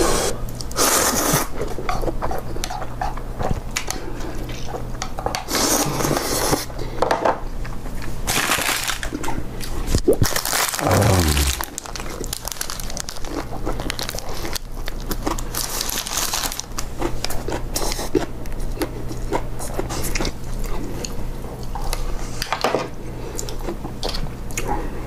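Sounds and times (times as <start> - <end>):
wrapper crinkling: 8.3 - 9.1, 10.2 - 16.8
slurping broth: 10.8 - 11.8
chewing: 10.8 - 22.1, 23.2 - 24.9.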